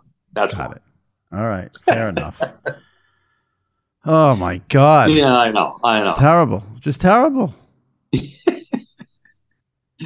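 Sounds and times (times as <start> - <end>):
man laughing: 1.8 - 2.9, 8.2 - 9.4.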